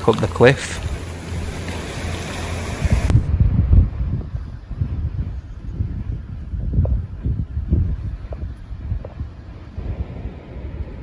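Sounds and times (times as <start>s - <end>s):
surf washing over pebbles: 0.0s - 3.3s
wind on microphone: 0.6s - 11.0s.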